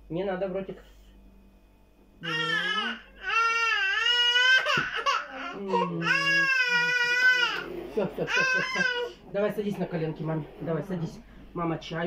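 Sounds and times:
baby crying: 0:02.2 - 0:09.2.

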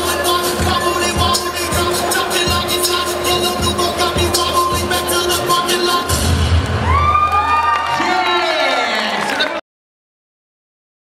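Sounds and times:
hip-hop dance track: 0:00.0 - 0:07.1
audience cheering and whooping: 0:06.1 - 0:09.6.

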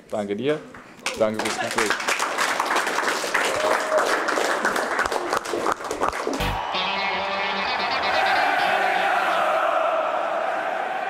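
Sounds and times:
small group applauding: 0:01.0 - 0:07.4
music: 0:06.4 - 0:09.4.

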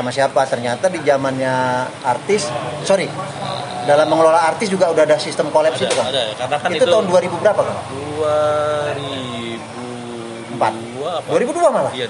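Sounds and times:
man's drawn-out hesitation sound: 0:00.0 - 0:12.0.

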